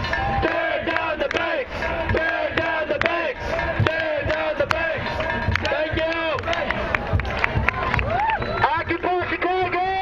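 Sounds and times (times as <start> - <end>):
crowd chanting and shouting: 0.0 - 10.0.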